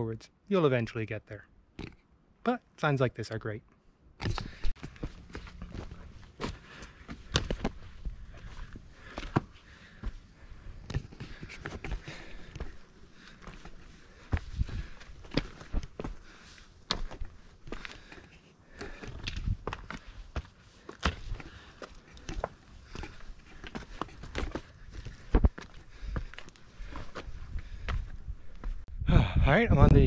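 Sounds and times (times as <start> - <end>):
footsteps on rocky trail: 4.2 - 28.9.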